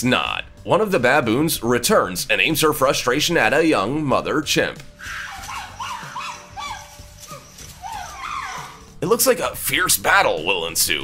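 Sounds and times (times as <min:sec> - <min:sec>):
primate calls: 0:05.0 - 0:09.0.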